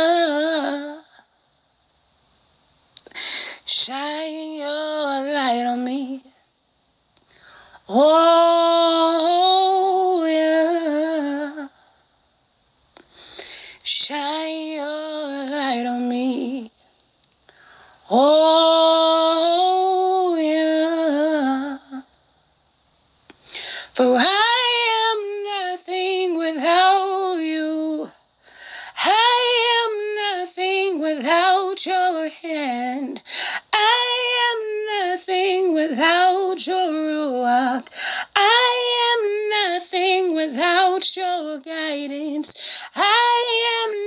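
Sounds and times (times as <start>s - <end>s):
woman singing unaccompanied: 0.0s - 1.4s, 3.0s - 6.4s, 7.8s - 12.0s, 13.7s - 16.8s, 18.0s - 22.2s, 23.8s - 28.2s, 28.8s - 44.0s.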